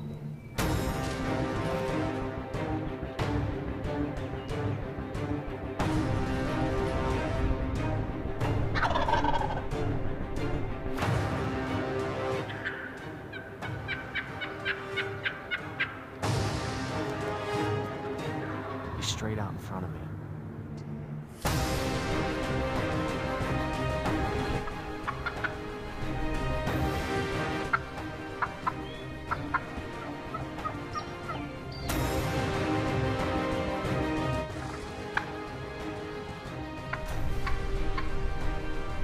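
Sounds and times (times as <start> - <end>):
background music: 0.0 - 39.0
wild turkey yelping: 8.8 - 9.6, 12.4 - 16.2, 24.6 - 25.7, 27.7 - 31.9.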